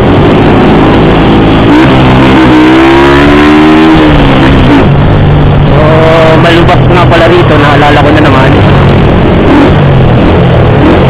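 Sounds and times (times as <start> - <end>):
motorcycle engine accelerating: 0.0 - 11.0
wind and road noise: 0.0 - 11.0.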